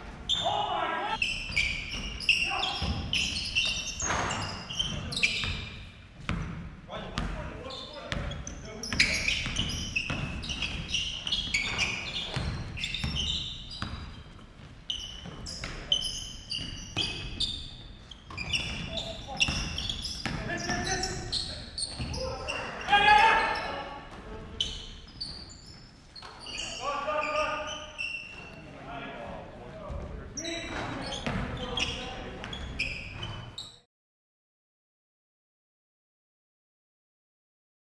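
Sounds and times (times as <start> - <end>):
sneakers squeaking: 0.0 - 33.9
players calling out: 0.3 - 5.6, 18.4 - 24.9
basketball bouncing: 2.8 - 6.6, 8.1 - 14.2, 18.3 - 20.8, 21.9 - 22.3.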